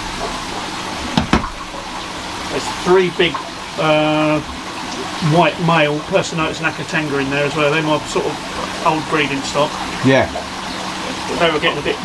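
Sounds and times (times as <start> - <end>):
water rushing and trickling: 0.0 - 12.0.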